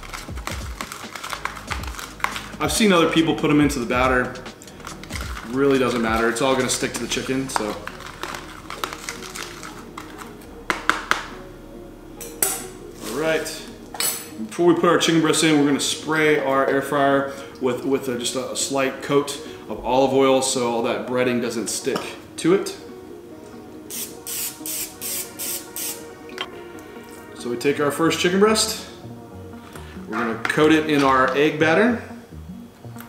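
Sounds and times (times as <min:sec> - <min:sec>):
background music: 0:00.0 - 0:33.0
cooking spray hissing bursts: 0:23.9 - 0:26.2.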